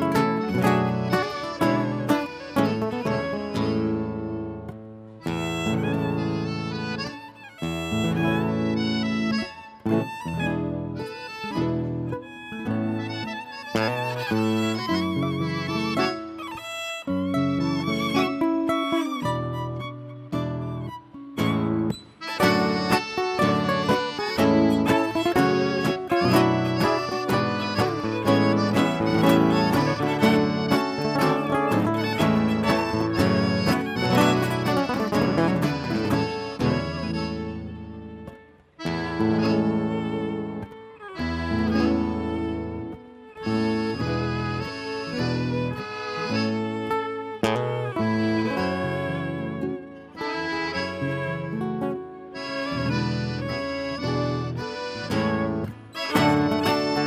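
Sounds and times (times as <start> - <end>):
accordion: 0.0 - 57.0
strummed acoustic guitar: 0.0 - 57.0.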